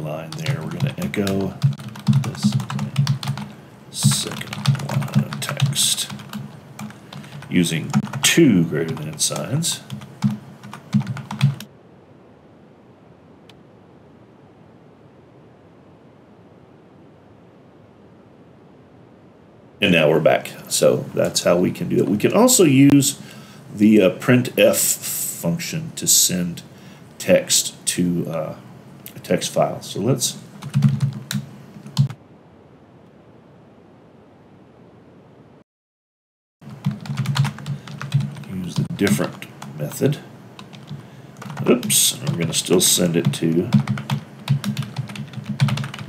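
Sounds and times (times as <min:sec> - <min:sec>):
keyboard keys clacking: 0:00.0 - 0:11.7, 0:30.6 - 0:32.2, 0:36.7 - 0:46.0
room hiss: 0:00.0 - 0:35.6, 0:36.6 - 0:46.0.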